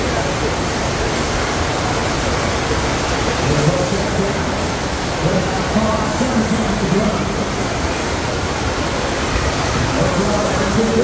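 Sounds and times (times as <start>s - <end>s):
voices: 0.0s - 11.0s
water rushing: 0.0s - 11.0s.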